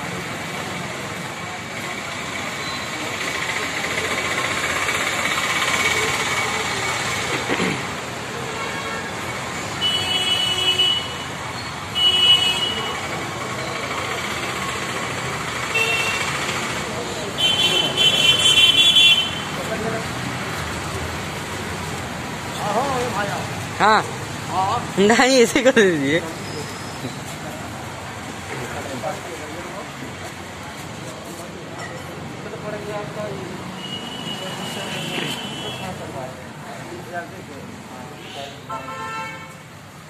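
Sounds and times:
street traffic noise: 0.0 - 40.0
vehicle horns blasting: 8.5 - 9.2, 9.8 - 13.0, 15.7 - 16.4, 17.3 - 19.6, 33.8 - 36.1, 38.2 - 39.7.

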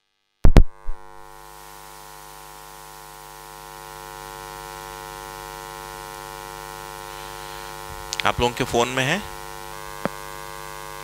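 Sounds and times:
electrical mains hum: 0.5 - 11.0
hiss: 7.0 - 7.8.

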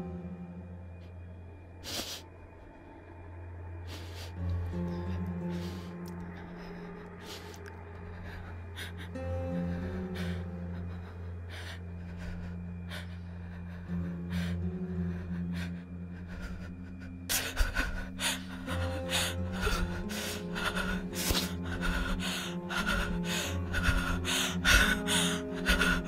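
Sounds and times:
tense film score drone: 0.0 - 26.0.

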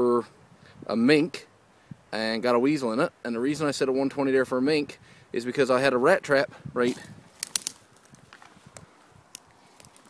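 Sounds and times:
light rustling: 6.8 - 10.0.

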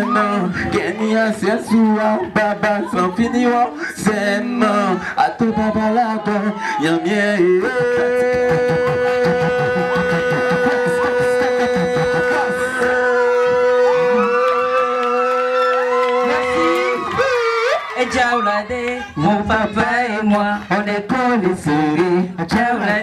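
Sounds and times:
men singing through a pa: 0.0 - 23.0.

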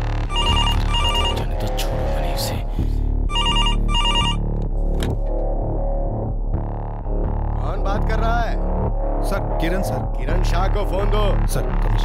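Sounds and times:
background film music: 0.0 - 12.0
desk telephone ringing: 0.3 - 1.5, 3.3 - 4.4.

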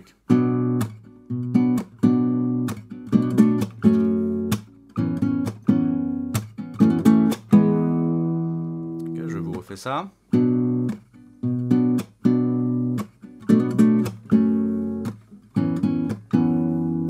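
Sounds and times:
acoustic guitar strumming: 0.0 - 17.0.

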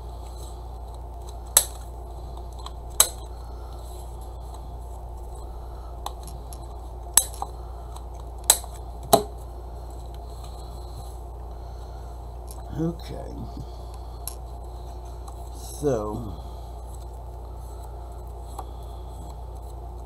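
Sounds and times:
steady low hum: 0.0 - 20.0
person speaking: 12.5 - 14.0, 15.4 - 16.7
person murmuring: 12.7 - 13.7.

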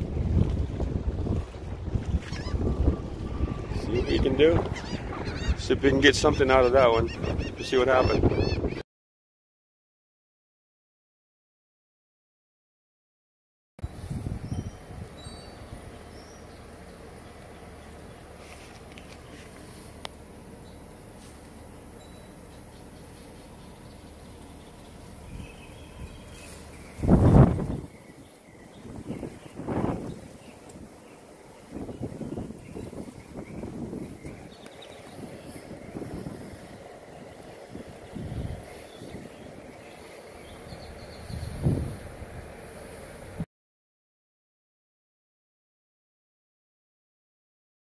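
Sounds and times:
low outdoor hum: 0.0 - 8.8, 13.8 - 43.5
wind buffeting microphone: 0.0 - 8.8, 13.8 - 16.2, 24.4 - 43.4.

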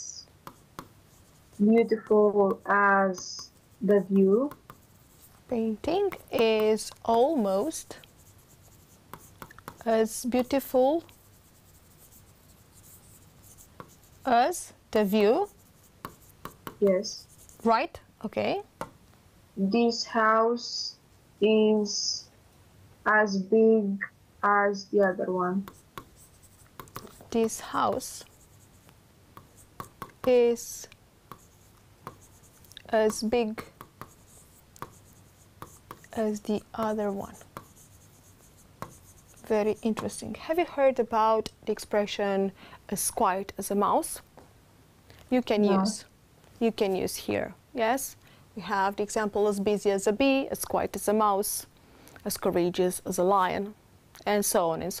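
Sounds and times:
stylus tapping on screen: 0.4 - 1.0, 1.9 - 3.6, 4.2 - 5.2, 5.9 - 10.0, 12.8 - 14.1, 16.0 - 17.6, 18.8 - 19.0, 25.6 - 40.2
pen scratching on paper: 0.5 - 17.8, 25.7 - 28.8, 29.4 - 40.2.

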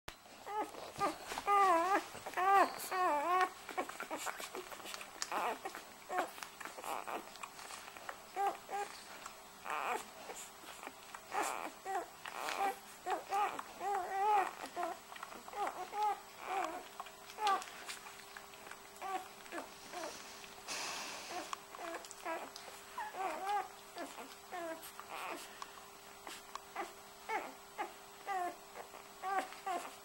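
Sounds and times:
newborn puppies squeaking: 0.4 - 20.4, 21.0 - 25.6, 26.2 - 30.0.

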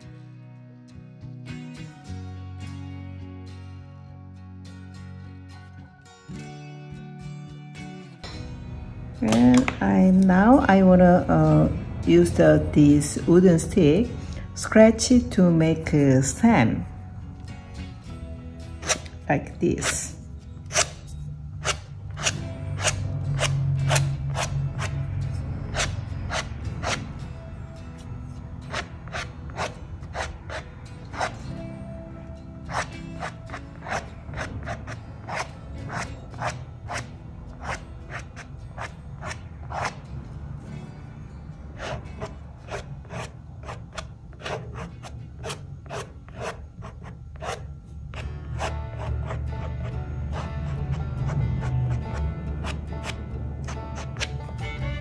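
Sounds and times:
background music: 0.0 - 55.0
wooden stick scratching paper: 18.8 - 19.1, 20.7 - 25.0, 25.6 - 27.1, 28.7 - 31.4, 32.7 - 37.0, 37.6 - 40.0, 41.8 - 54.4.

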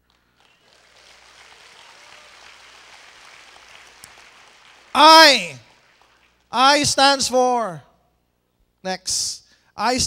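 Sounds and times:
faint audience applause: 0.0 - 6.5.

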